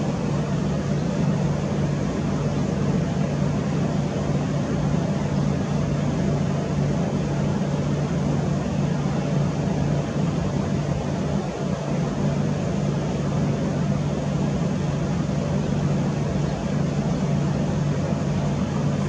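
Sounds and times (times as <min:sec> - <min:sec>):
constant wash of noise: 0:00.0 - 0:19.0
low mechanical hum: 0:00.0 - 0:19.0.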